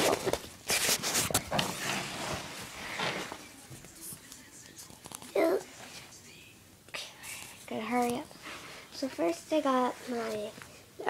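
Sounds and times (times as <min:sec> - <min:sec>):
person whispering: 0:03.2 - 0:08.3
girl speaking: 0:05.3 - 0:05.7, 0:07.7 - 0:08.3, 0:09.0 - 0:11.0.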